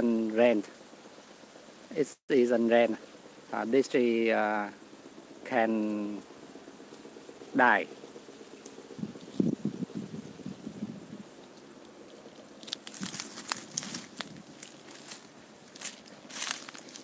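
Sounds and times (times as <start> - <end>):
dry leaves crunching: 12.5 - 17.0.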